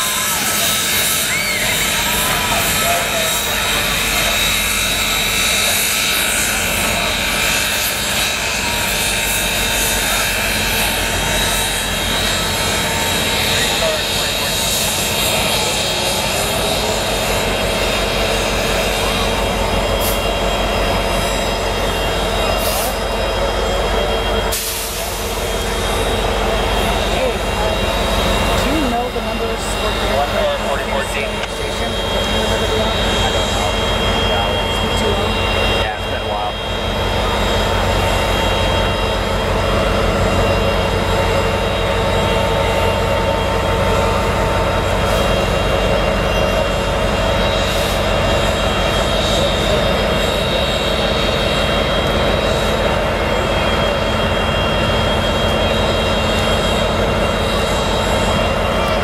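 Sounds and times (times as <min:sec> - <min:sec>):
crowd talking: 0:00.0 - 0:59.0
steam train rumbling past: 0:00.0 - 0:59.0
whining tones: 0:00.0 - 0:59.0.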